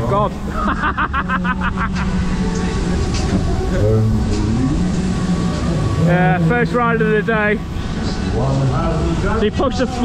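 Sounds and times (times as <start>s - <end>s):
low drone: 0.0s - 9.5s
person laughing: 0.5s - 2.2s.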